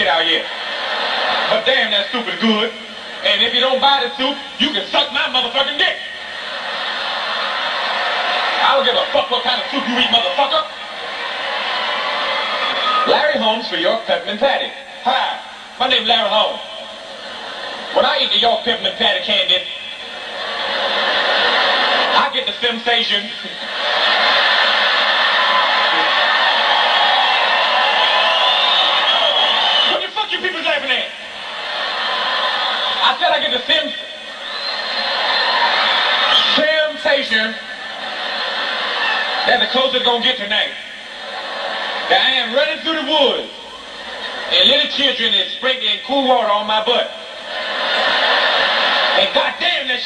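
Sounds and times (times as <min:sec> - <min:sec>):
audience laughing and applauding: 0:00.0 - 0:02.4, 0:03.0 - 0:13.4, 0:16.9 - 0:45.5, 0:46.3 - 0:50.0.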